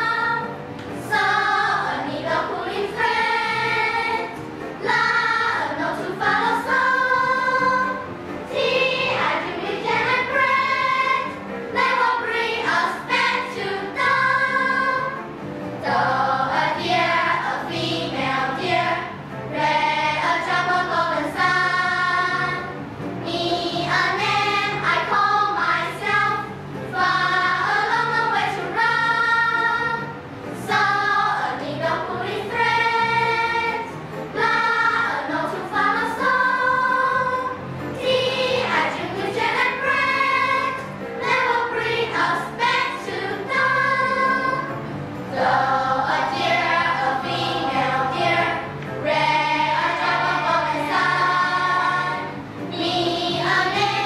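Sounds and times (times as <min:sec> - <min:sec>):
children's choir singing: 0:00.0 - 0:54.0.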